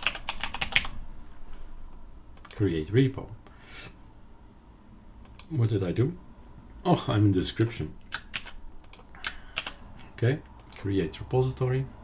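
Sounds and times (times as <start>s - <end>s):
keyboard keys clicking: 0.0s - 0.9s, 7.6s - 9.8s.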